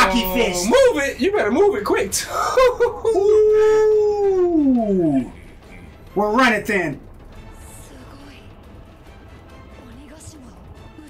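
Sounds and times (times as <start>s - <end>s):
man exclaiming oooh: 2.3s - 5.3s.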